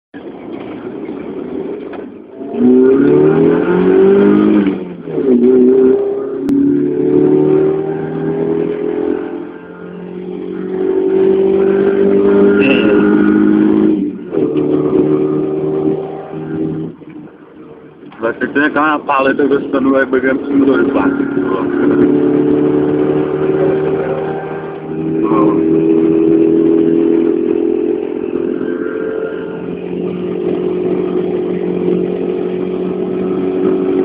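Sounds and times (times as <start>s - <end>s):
car engine accelerating: 0.2s - 34.0s.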